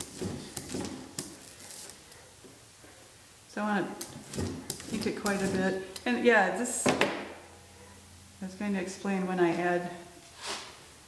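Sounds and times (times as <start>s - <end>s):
rubber brayer rustling on plate: 0.0s - 2.4s, 3.9s - 6.0s.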